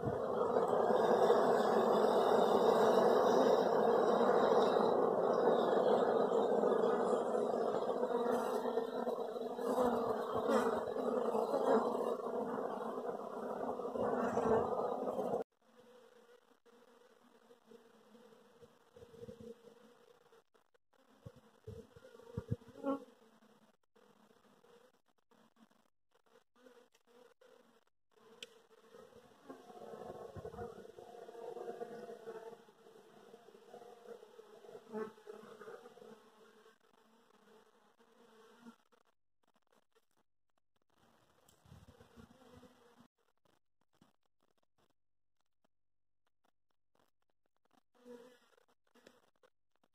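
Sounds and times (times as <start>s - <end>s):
honeybees buzzing: 0.0s - 15.4s.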